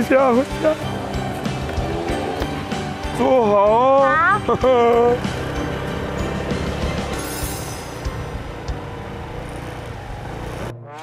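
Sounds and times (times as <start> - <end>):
motor scooter running: 0.0 - 10.7
traffic noise: 0.0 - 10.8
background music: 0.0 - 11.0.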